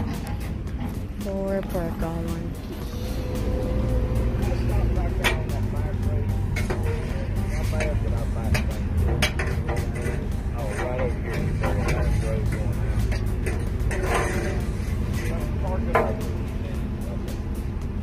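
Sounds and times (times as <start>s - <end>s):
engine idling: 0.0s - 18.0s
faint indistinct voices: 3.2s - 17.8s.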